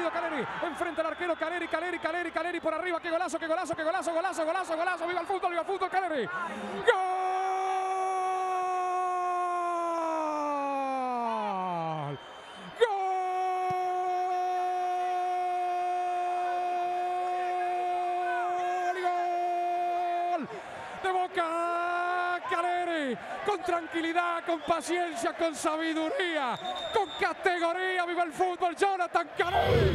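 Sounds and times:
quick breath: 0:06.4 - 0:06.9, 0:20.5 - 0:21.0.

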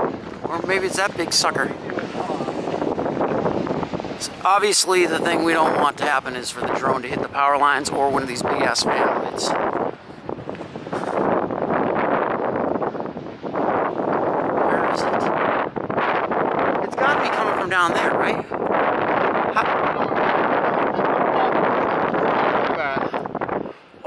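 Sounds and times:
wind rushing over microphone: 0:00.0 - 0:24.0.

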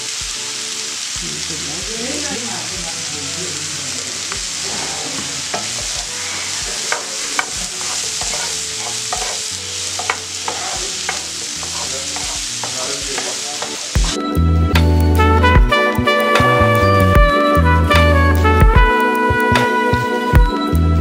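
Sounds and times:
mushrooms sizzling in a frying pan: 0:00.0 - 0:17.4
wooden spoon scraping a pan: 0:04.1 - 0:14.0.

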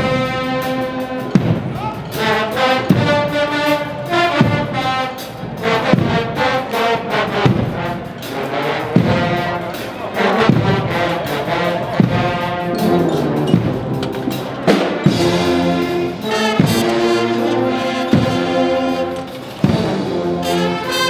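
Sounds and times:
brass band playing: 0:00.0 - 0:21.0
heavy accented drum stroke: 0:00.0 - 0:21.0
snare drums: 0:00.0 - 0:21.0.

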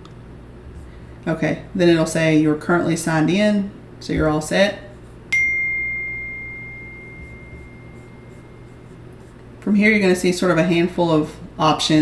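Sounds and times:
high ringing tone: 0:05.3 - 0:09.1.

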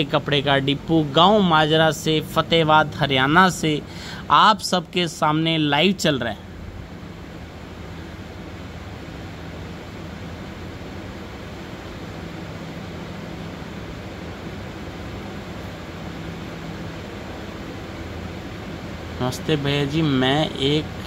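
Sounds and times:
low hum: 0:00.0 - 0:21.0
steady hiss: 0:00.0 - 0:21.0.

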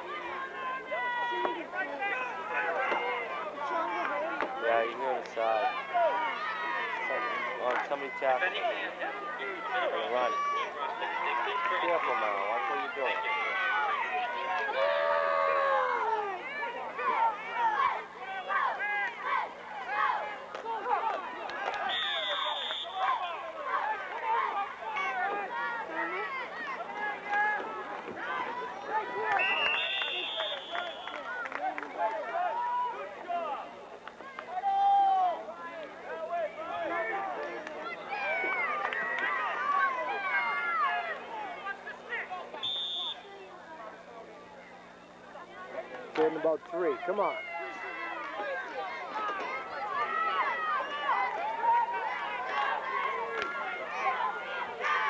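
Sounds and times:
spectators talking and calling out: 0:00.0 - 0:55.0
referee's whistle blowing: 0:21.8 - 0:23.2, 0:29.3 - 0:31.3, 0:42.5 - 0:43.3.

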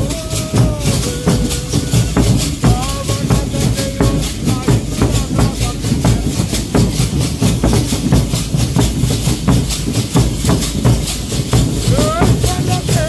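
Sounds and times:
drums: 0:00.0 - 0:13.0
shaken rattles: 0:00.0 - 0:13.0.

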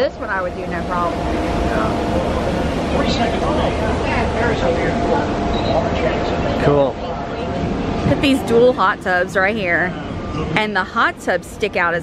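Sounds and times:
faint continuous hum: 0:00.0 - 0:12.0
indistinct voices: 0:00.0 - 0:12.0
steady low rumble: 0:00.0 - 0:12.0.

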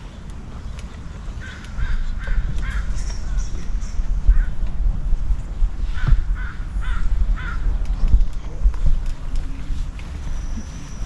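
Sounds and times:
low rumble: 0:00.0 - 0:11.0
bird harsh calls: 0:01.1 - 0:04.6.

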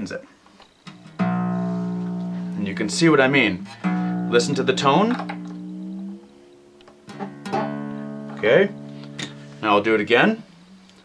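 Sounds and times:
guitar string plucked: 0:00.9 - 0:09.7.

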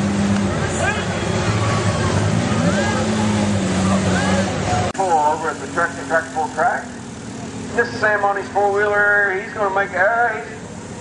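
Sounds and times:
crowd voices: 0:00.0 - 0:11.0
off-road vehicle engine running: 0:00.0 - 0:11.0.

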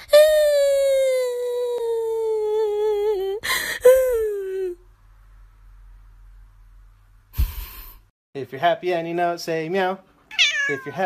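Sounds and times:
kitten wailing mew: 0:10.3 - 0:11.0.

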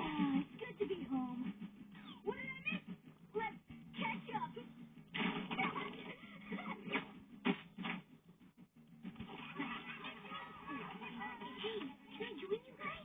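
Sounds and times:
cartoon voices from tv speaker: 0:00.0 - 0:04.8, 0:09.7 - 0:13.0.

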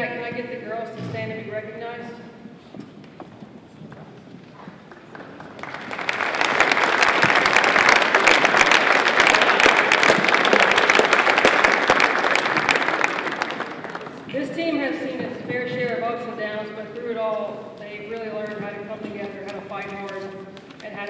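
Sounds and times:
audience clapping: 0:04.6 - 0:14.4, 0:19.2 - 0:21.0.

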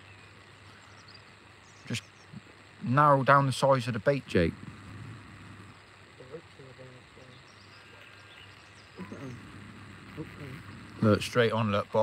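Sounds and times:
outdoor background hiss: 0:00.0 - 0:12.0
faint distant voices: 0:00.6 - 0:12.0.

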